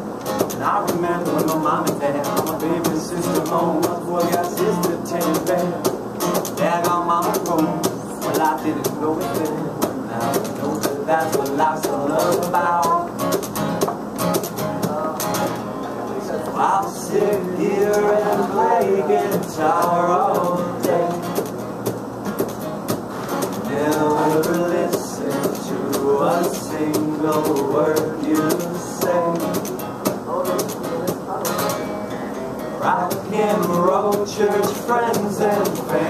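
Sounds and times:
acoustic guitar strumming: 0.0 - 36.0.

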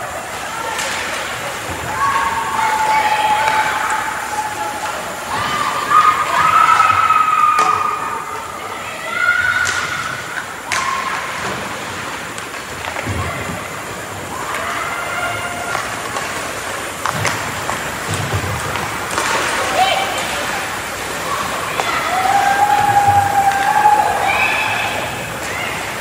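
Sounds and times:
voices shouting: 0.0 - 12.3, 13.0 - 17.0, 19.2 - 26.0
hockey sticks and puck clacking: 0.3 - 4.1, 6.3 - 8.0, 9.4 - 13.5, 15.6 - 24.0.

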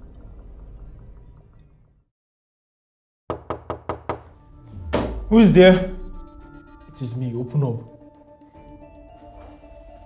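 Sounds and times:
knocks on a door: 3.3 - 4.3
low rising music swell: 4.4 - 9.0.

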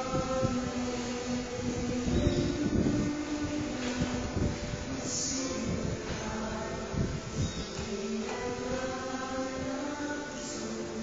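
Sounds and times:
worship song with low beat: 0.0 - 11.0.

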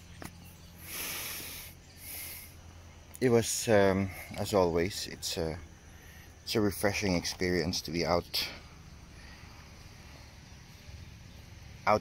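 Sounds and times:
man breathing close to microphone: 0.8 - 2.7, 8.6 - 10.8.

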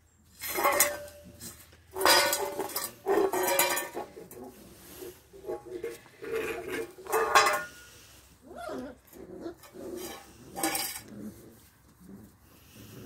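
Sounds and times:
metal bowl clattering on paving: 0.4 - 8.0, 9.5 - 11.1
puppy vocal sounds: 8.4 - 13.0.

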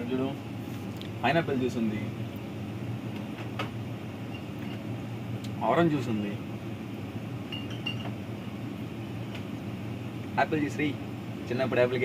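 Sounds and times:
cooling equipment humming: 0.0 - 12.0.

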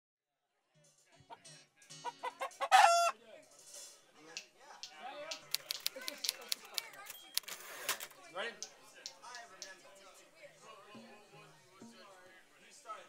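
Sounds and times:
room full of chatter: 0.6 - 13.0
rooster crowing: 2.5 - 3.2.

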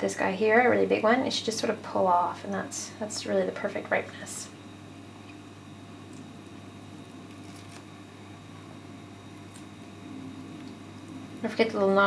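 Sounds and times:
avocado skin being peeled: 5.2 - 11.5.

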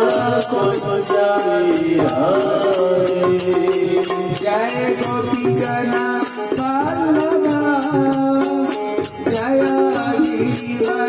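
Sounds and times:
devotional singing: 0.0 - 11.0
steady percussive beat: 0.0 - 11.0.

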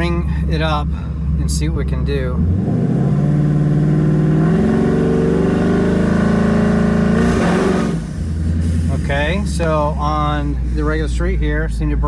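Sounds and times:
car engine revving: 0.0 - 11.2.

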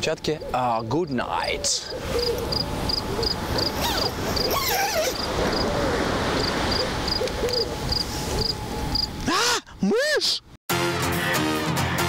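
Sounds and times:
insect chirping: 1.9 - 5.7, 6.3 - 9.2.

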